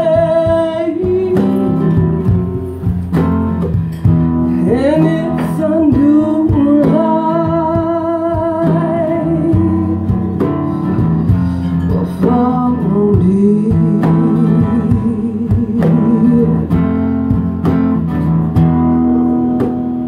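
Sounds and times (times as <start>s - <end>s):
woman singing wordless notes: 0.0s - 2.9s, 4.5s - 17.0s
acoustic guitar strumming: 0.0s - 20.0s.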